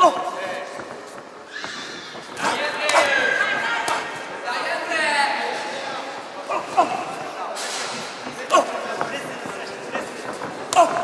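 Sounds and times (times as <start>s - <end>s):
shouting voices and crowd: 1.6s - 11.0s.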